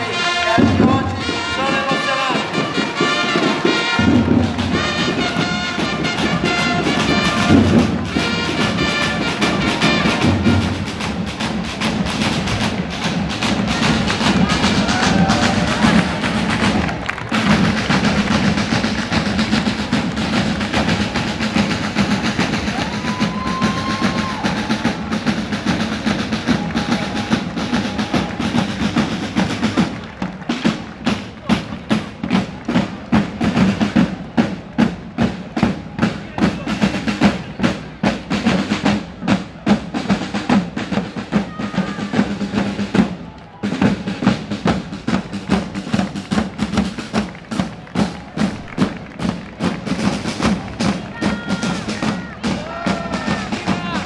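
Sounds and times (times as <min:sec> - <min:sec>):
side drums playing marching rhythm: 0:00.0 - 0:54.0.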